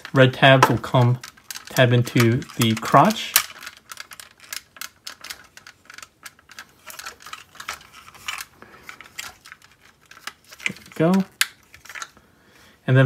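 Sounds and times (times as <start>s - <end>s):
action figure parts clicking: 0.0s - 12.2s.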